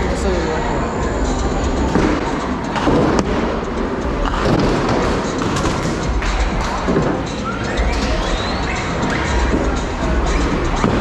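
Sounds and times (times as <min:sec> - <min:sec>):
bowling alley din: 0:00.0 - 0:11.0
music playing: 0:00.0 - 0:11.0.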